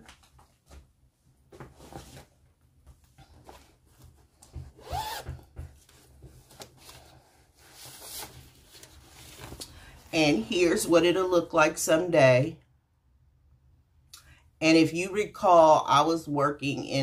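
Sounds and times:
rubbing and rustling: 0.0 - 9.7.

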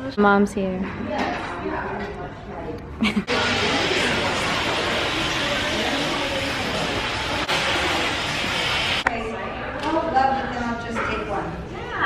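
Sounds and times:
hair dryer blowing: 3.3 - 9.0.

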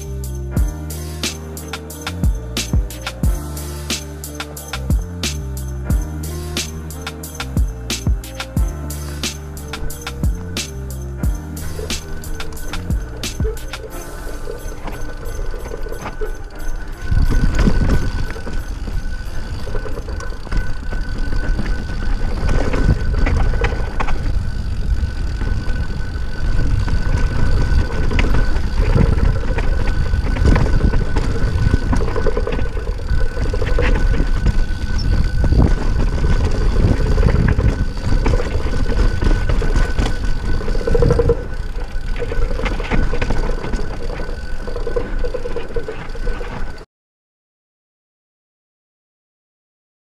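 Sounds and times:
bike knocking and rattling: 0.0 - 46.8
bike tyres rolling on dirt: 0.0 - 46.8
wind rushing on microphone: 16.4 - 44.0.

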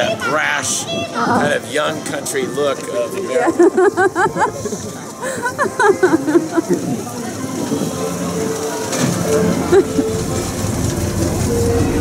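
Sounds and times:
vehicle rumbling past: 6.2 - 12.0.

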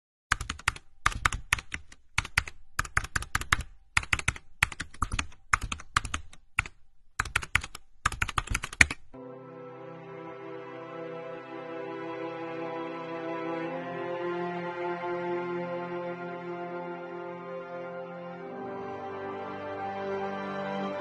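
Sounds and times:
keyboard typing: 0.3 - 9.2
slow sustained music: 9.2 - 21.0.

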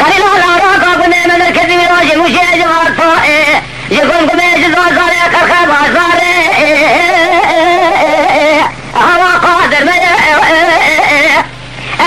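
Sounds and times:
person singing unaccompanied: 0.0 - 12.0.

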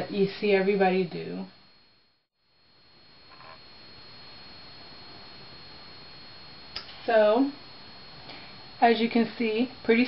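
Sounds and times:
high-pitched whine: 0.0 - 10.0
steady low hiss: 0.0 - 10.0.

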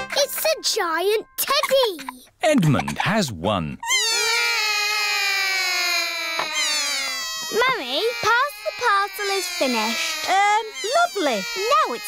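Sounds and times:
wavering cartoon vocal sounds: 3.8 - 12.0.

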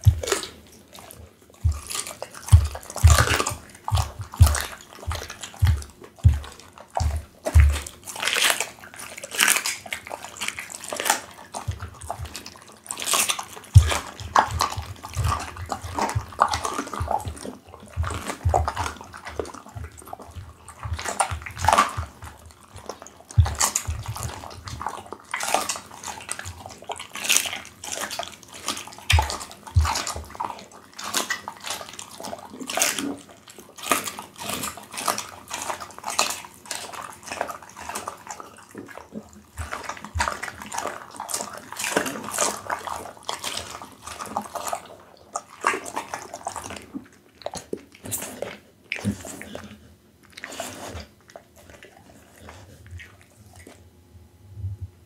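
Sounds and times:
dog chewing meat: 0.0 - 54.9.

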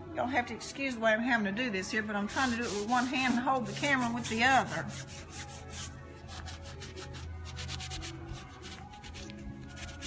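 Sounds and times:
gauze rubbing on picture frame: 2.3 - 10.0.

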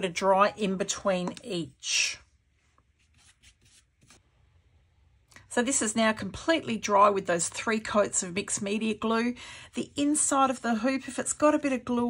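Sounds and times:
paintbrush strokes on fabric: 2.5 - 4.3.

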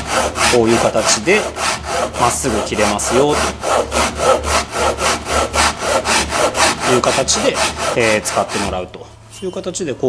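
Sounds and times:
hand saw cutting wood: 0.0 - 9.0.

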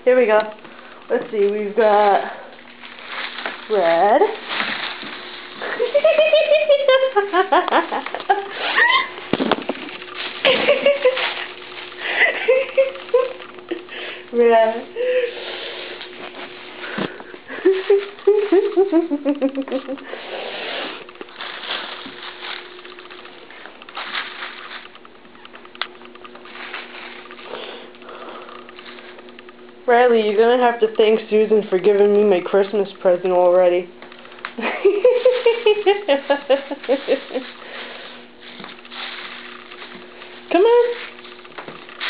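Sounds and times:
woman laughing: 5.6 - 9.2, 10.4 - 11.4, 12.0 - 14.0, 17.5 - 20.2, 34.6 - 37.6.

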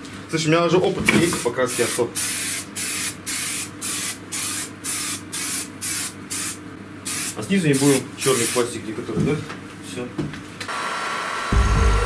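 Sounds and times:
spray can hissing in bursts: 1.7 - 8.7.

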